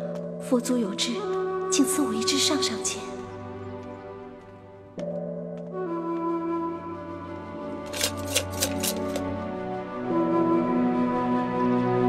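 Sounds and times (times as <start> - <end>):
soft background music: 0.0 - 12.0
wooden sticks rattling in cup: 7.9 - 9.2.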